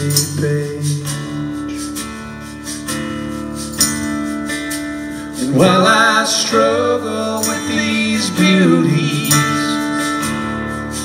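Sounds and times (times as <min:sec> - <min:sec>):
man singing: 0:00.0 - 0:02.0, 0:05.4 - 0:10.1
strummed acoustic guitar: 0:00.0 - 0:11.0.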